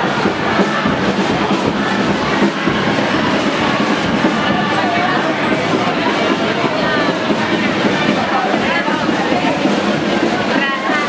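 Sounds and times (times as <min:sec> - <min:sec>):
street crowd noise: 0:00.0 - 0:11.0
snare drum playing: 0:00.1 - 0:10.6.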